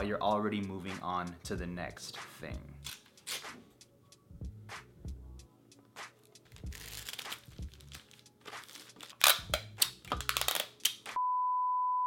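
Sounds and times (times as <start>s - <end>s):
paper rustling and crinkling: 6.2s - 9.4s.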